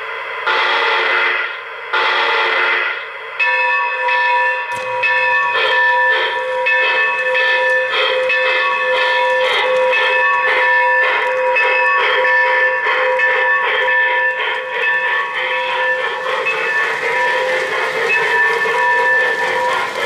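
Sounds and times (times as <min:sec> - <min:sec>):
electronic locomotive bell ringing: 0:00.5 - 0:20.0.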